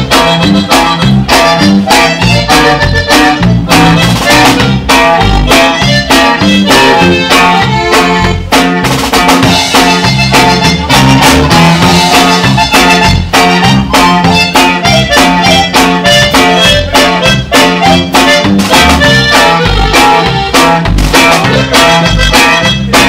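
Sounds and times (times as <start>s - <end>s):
bass line: 0.0s - 23.0s
drum kit two-beat rhythm: 0.0s - 23.0s
twelve-string guitar strummed: 0.0s - 23.0s.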